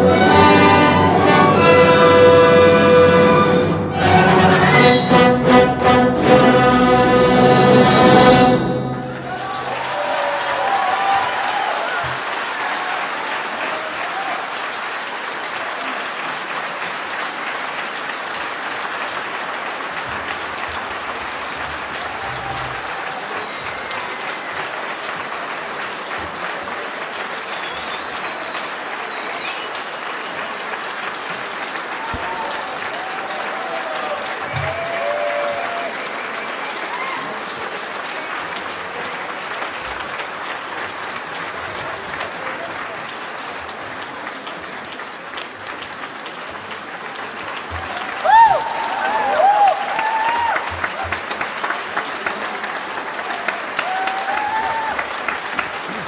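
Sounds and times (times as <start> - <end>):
large audience applause: 0.0 - 4.6, 5.4 - 56.0
crowd calling out: 0.0 - 14.5, 21.9 - 24.8, 32.0 - 36.1, 47.7 - 51.2.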